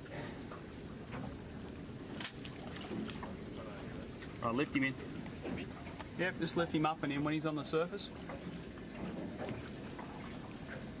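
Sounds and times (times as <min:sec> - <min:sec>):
water around a boat: 0:00.0 - 0:11.0
wind: 0:00.0 - 0:11.0.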